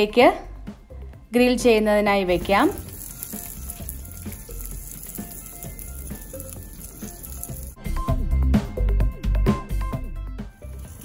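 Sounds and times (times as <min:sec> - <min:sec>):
fish sizzling on grill: 0:02.4 - 0:07.8, 0:10.6 - 0:11.0.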